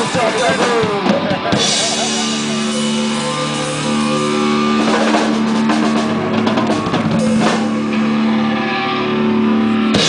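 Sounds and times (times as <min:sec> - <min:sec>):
guitar and bass chord ringing: 0:01.4 - 0:10.0.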